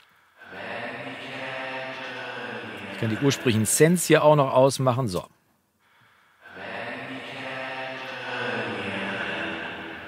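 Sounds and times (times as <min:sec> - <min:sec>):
reverberant sung vocal: 0:00.0 - 0:05.1, 0:05.8 - 0:10.0.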